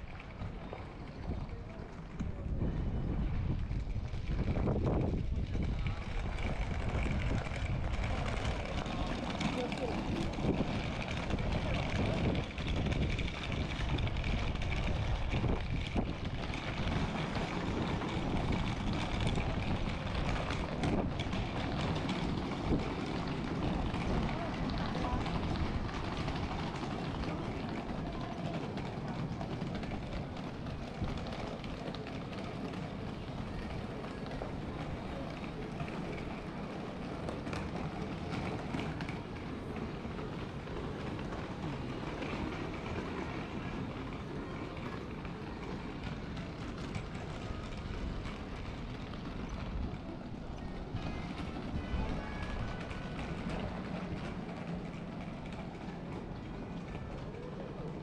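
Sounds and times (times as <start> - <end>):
indistinct voices of passers-by: 0.0 - 58.0
street noise: 0.0 - 58.0.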